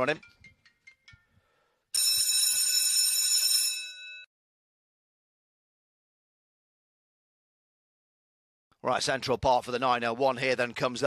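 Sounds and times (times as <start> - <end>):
electric bell ringing: 2.0 - 4.3.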